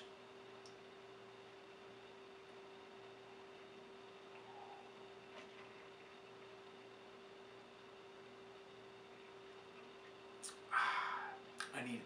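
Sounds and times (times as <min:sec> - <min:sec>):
faint steady hum: 0:00.0 - 0:12.0
faint click: 0:00.6 - 0:00.8.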